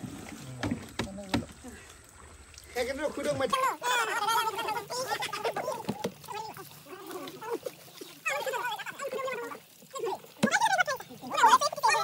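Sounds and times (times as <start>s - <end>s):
splashing shallow muddy water: 0.0s - 12.0s.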